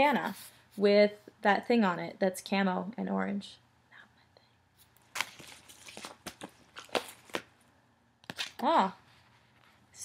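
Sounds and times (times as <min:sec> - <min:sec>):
paper and packaging rustling: 0:04.8 - 0:07.6.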